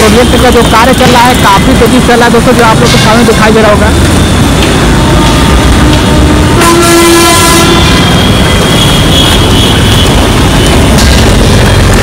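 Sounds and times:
heavy vehicle traffic rumble: 0:00.0 - 0:12.0
vehicle horn: 0:05.0 - 0:10.2.

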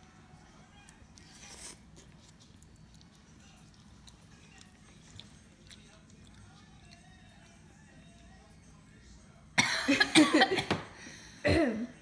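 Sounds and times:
woman coughing harshly: 0:09.6 - 0:12.0.

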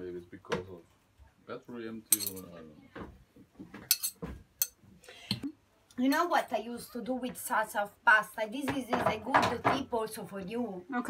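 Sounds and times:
dishes and cutlery clinking: 0:02.1 - 0:02.5, 0:03.8 - 0:04.8.

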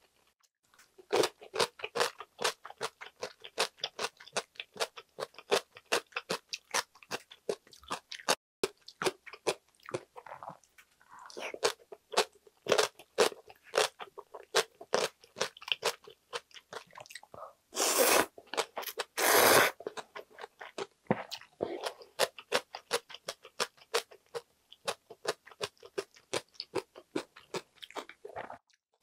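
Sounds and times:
crunchy chewing: 0:00.7 - 0:28.7.

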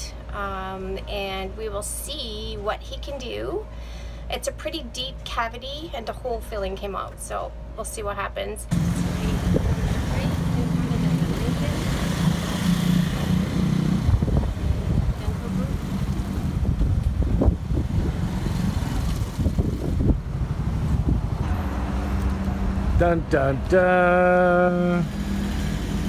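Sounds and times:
vehicle engine running: 0:08.7 - 0:26.0.

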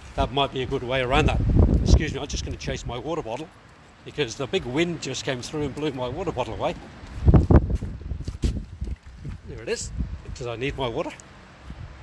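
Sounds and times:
wind buffeting microphone: 0:00.0 - 0:03.4, 0:05.6 - 0:12.0
footsteps: 0:06.6 - 0:09.5.

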